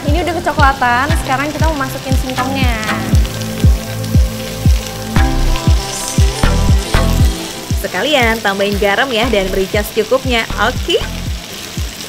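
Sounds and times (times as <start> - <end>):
background music with kick drum: 0.0 - 12.0
food sizzling in a pan: 0.0 - 12.0.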